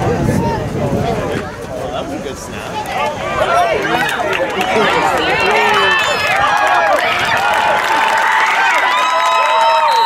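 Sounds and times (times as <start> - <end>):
crowd yelling and cheering: 2.7 - 10.0.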